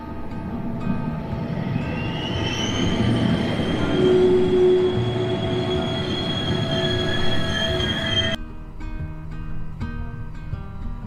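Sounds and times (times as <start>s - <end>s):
metallic wheel squeal: 0.0s - 8.4s
train rumbling on rails: 0.0s - 8.4s.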